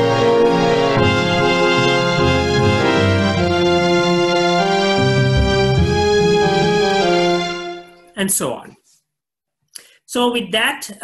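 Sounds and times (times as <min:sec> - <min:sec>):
orchestral chords playback: 0:00.0 - 0:08.2.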